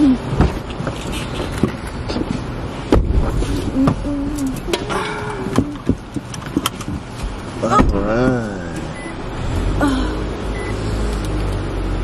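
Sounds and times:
car engine rumble from inside: 0.0 - 12.0.

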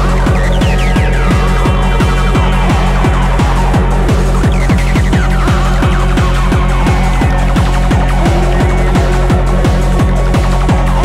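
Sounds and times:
electronic synth lines: 0.0 - 11.0
fast kick drum: 0.0 - 11.0.

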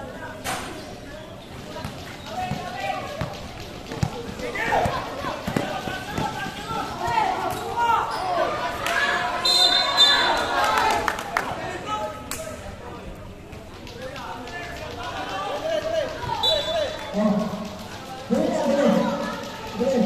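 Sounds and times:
basketball bouncing on concrete: 1.8 - 7.2
players and spectators shouting: 1.8 - 12.2, 14.9 - 20.0.

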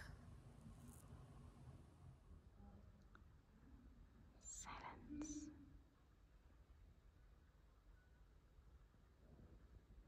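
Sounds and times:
faint whisper: 4.3 - 5.7.

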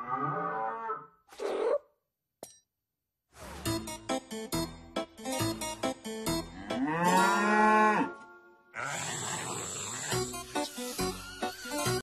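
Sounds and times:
cow mooing: 0.0 - 1.1, 6.6 - 9.5.

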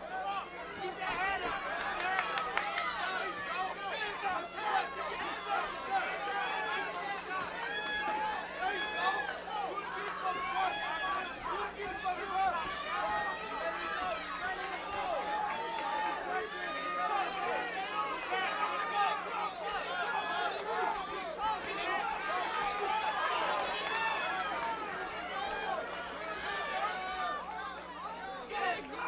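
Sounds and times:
crowd talking and shouting: 0.0 - 29.0.

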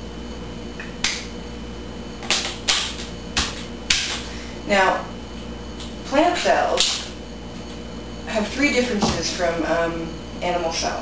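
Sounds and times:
sharp snapping clicks: 0.8 - 1.3, 6.8 - 7.1.

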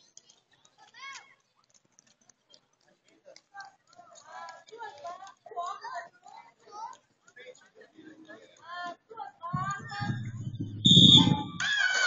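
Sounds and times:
spectators shouting and cheering: 9.6 - 12.0
shrill starting whistle: 10.8 - 11.9.

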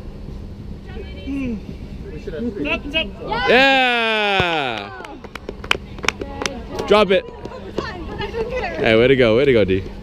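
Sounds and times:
hand claps: 4.4 - 6.6.

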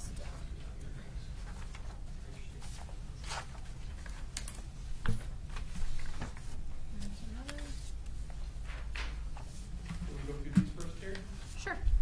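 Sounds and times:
paper shuffling on a desk: 0.1 - 12.0.

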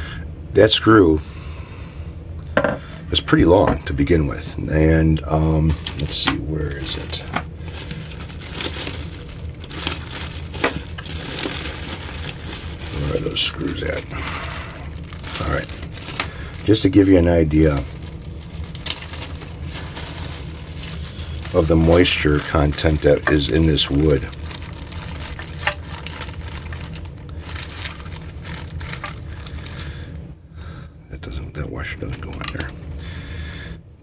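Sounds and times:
low hum: 0.0 - 34.0
plastic bag crinkling: 5.3 - 30.1.

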